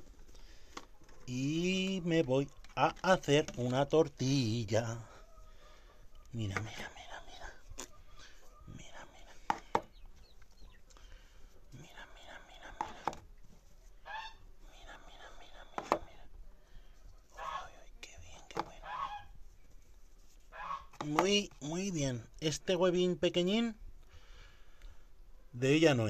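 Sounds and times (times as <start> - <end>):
hen calling: 14.0 - 14.5, 17.3 - 17.8, 18.6 - 19.4, 20.5 - 21.8.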